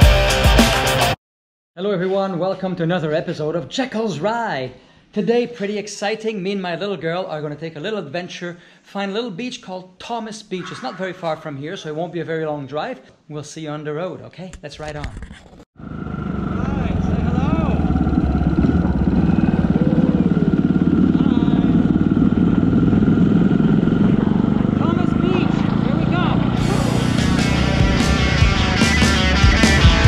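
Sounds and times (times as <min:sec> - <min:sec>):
rock music: 0:00.0 - 0:01.2, 0:24.6 - 0:30.0
wind rumble on microphone: 0:15.8 - 0:24.8
motorcycle engine running: 0:15.8 - 0:30.0.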